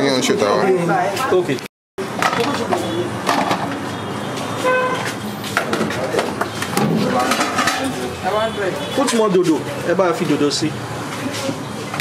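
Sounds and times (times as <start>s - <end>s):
indistinct voices and chatter: 0.0s - 12.0s
traffic noise: 0.0s - 12.0s.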